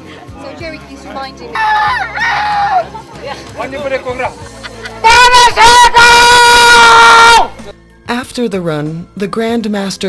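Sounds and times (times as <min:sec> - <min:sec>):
man shouting a long call: 0:05.0 - 0:07.5.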